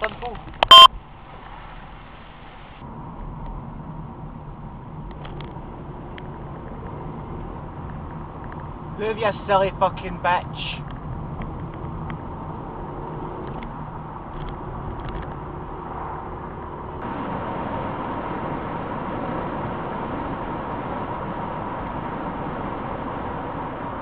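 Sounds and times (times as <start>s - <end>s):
car engine and tyre noise: 0.0s - 24.0s.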